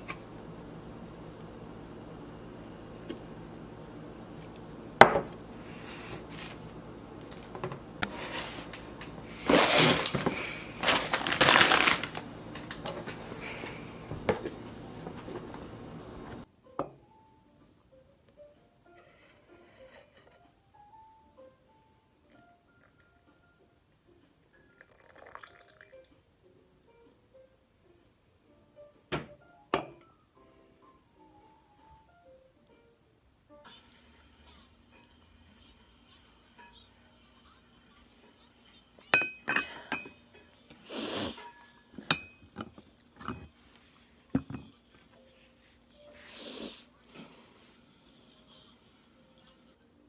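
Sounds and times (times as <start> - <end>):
pot knocking on stone counter: 5.0 - 5.4
soft background music: 14.5 - 50.0
coffee trickling into a cup: 24.6 - 26.1.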